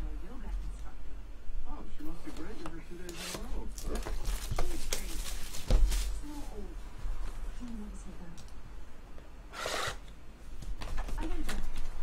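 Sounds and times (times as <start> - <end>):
cardboard box rustle: 2.4 - 6.5.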